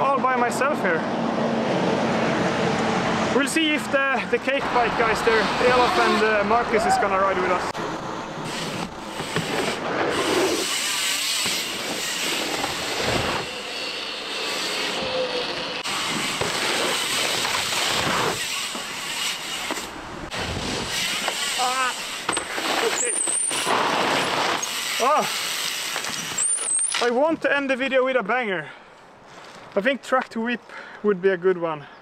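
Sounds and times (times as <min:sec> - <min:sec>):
steady outdoor noise: 0:00.0 - 0:32.0.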